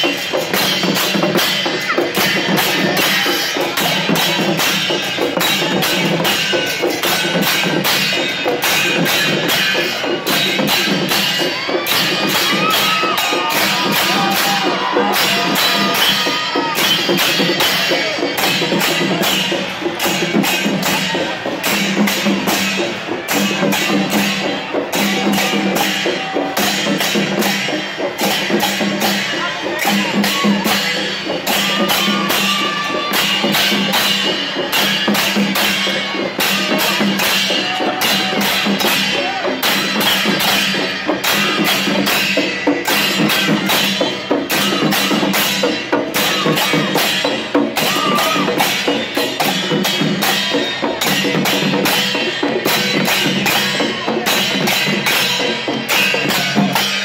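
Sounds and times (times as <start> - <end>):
barrel drums: 0.0 - 57.0
brass hand cymbals: 0.0 - 57.0.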